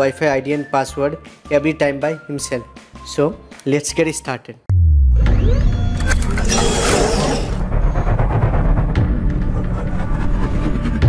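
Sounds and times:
deep bass boom: 4.7 - 10.2.

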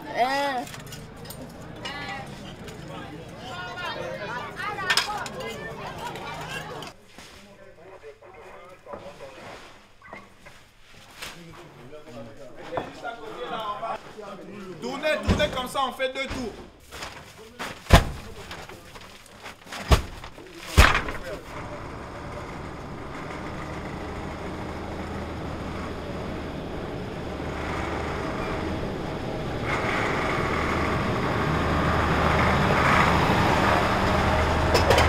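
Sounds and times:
diesel truck driving past: 0.8 - 6.9, 21.4 - 35.0
sacks thudding onto truck bed: 19.7 - 21.2.

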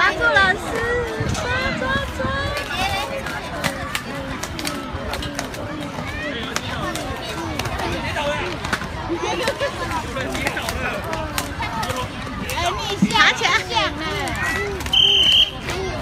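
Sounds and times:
children chattering and calling: 0.0 - 16.0
skate wheels rolling on pavement: 0.0 - 16.0.

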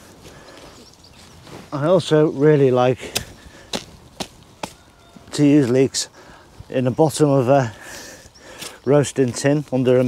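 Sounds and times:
sharp taps handling leeks: 3.1 - 4.8.

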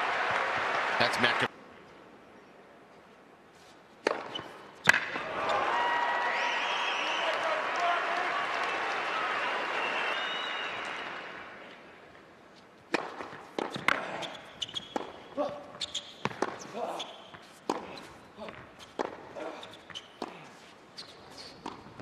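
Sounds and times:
racket hitting ball: 4.0 - 5.3, 12.9 - 15.6, 16.2 - 16.7, 17.4 - 19.3, 21.6 - 22.0
tennis ball bouncing on hard court: 4.0 - 5.3, 12.9 - 20.4, 21.5 - 22.0.

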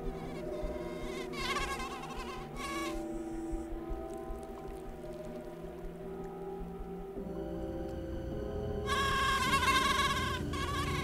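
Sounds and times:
mosquito wing whine: 0.0 - 5.8, 7.2 - 11.0
low music drone: 0.0 - 11.0.

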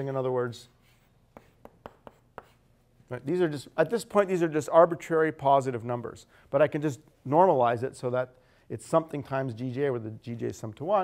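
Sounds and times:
chalk tapping on blackboard: 0.8 - 2.8.

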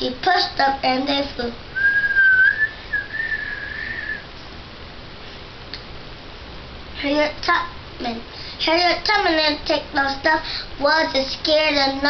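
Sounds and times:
girl whistling: 1.8 - 4.3.

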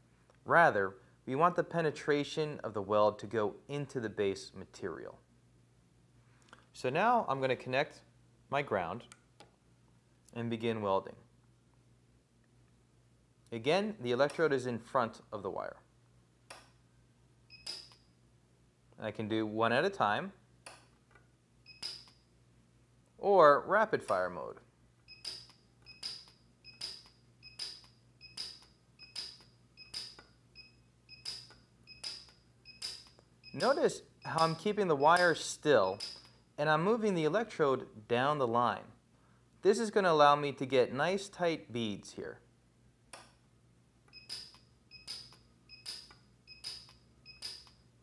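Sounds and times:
short high machine beep: 25.1 - 36.2, 44.2 - 47.6.

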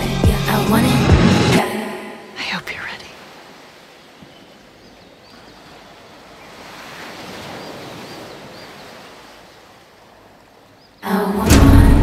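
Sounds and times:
ocean waves washing in: 5.2 - 12.0.

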